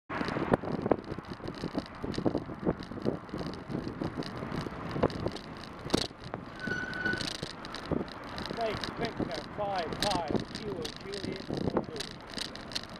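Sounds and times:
bike clicks and rattles: 0:00.1 - 0:12.9
tyre and road rumble: 0:00.1 - 0:12.9
wind buffeting microphone: 0:00.1 - 0:12.9
steady high squeal: 0:06.5 - 0:07.7.

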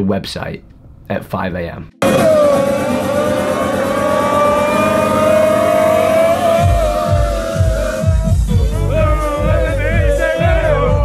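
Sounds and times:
club music: 0:01.9 - 0:11.0
rising siren-like synth tone: 0:02.0 - 0:08.2
heavy bass beats: 0:02.0 - 0:11.0.

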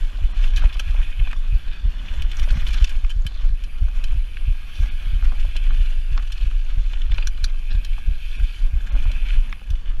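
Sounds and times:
bike clicks and rattles: 0:00.0 - 0:10.0
wind buffeting microphone: 0:00.0 - 0:10.0.

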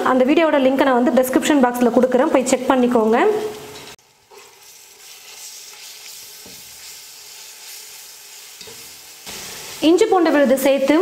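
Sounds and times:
onions sizzling in hot oil: 0:03.5 - 0:11.0.

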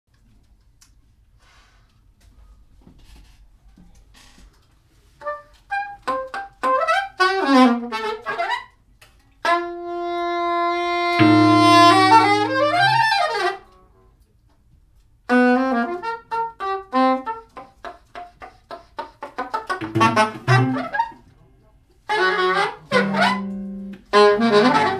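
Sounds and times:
soprano saxophone playing: 0:05.2 - 0:08.8, 0:09.4 - 0:14.0, 0:15.3 - 0:17.7, 0:19.4 - 0:21.3, 0:22.0 - 0:24.9.

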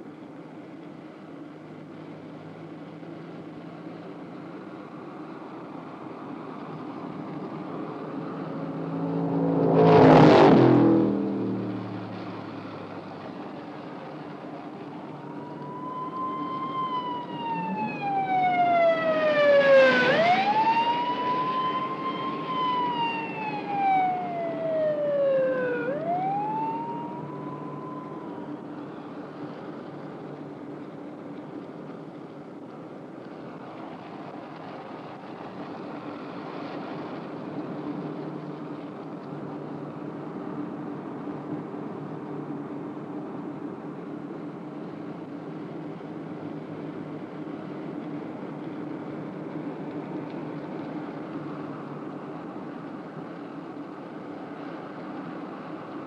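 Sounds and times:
engine and road noise: 0:00.0 - 0:56.0
vehicle passing close by: 0:07.0 - 0:13.8, 0:15.0 - 0:28.5
police siren wailing: 0:14.8 - 0:28.8.

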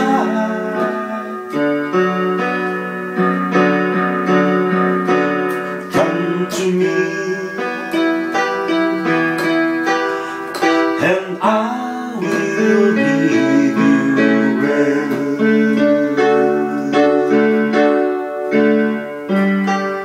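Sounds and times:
electronic keyboard playing chords: 0:00.0 - 0:20.0.

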